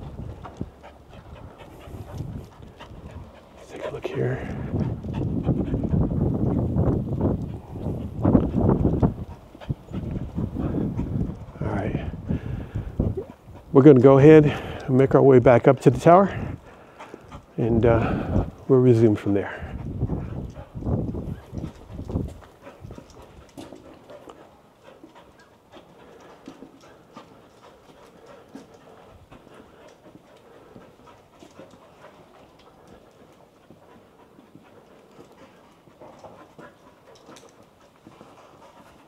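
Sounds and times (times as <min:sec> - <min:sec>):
dog panting: 0:00.0 - 0:39.0.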